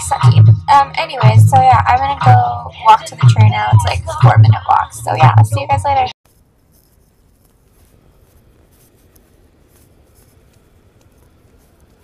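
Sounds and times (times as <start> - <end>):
footsteps crunching through snow: 6.3 - 12.0.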